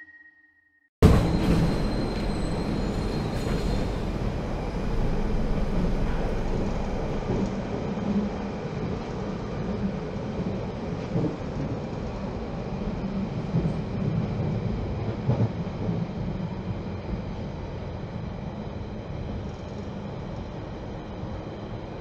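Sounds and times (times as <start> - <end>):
subway car rumbling on rails: 1.0 - 22.0.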